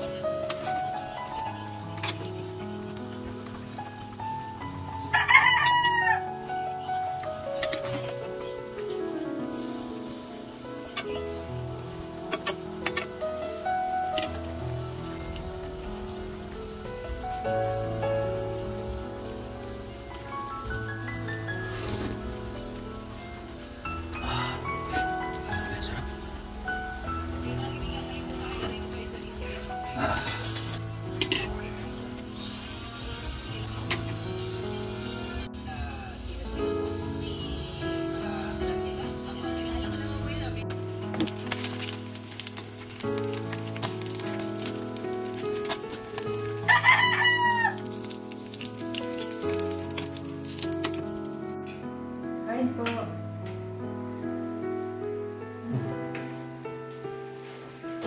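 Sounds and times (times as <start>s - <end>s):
background music: 0.0s - 58.0s
rooster crowing: 5.0s - 6.5s, 46.6s - 48.0s
utensil clinking against wok: 30.2s - 31.7s.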